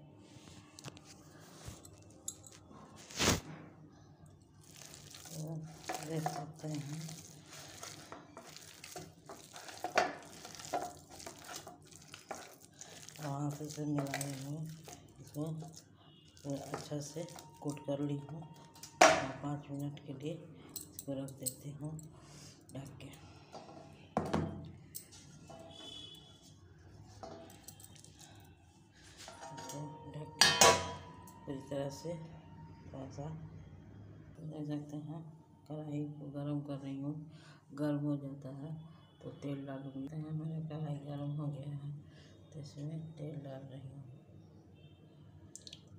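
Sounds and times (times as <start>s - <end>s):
hand squishing wet mixture: 4.6s - 19.0s, 26.9s - 29.6s
steel kitchenware clinking: 4.8s - 19.6s, 27.2s - 28.3s, 29.2s - 31.6s
steel plate clanging on bowl: 30.4s - 31.4s.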